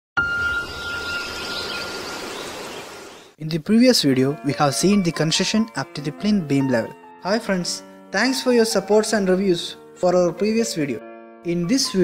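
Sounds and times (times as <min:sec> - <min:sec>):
ringing chime tone: 0:00.2 - 0:02.2.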